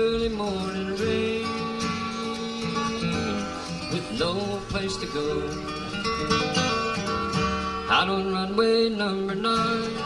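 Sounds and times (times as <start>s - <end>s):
acoustic bluegrass band playing: 0.0s - 10.0s.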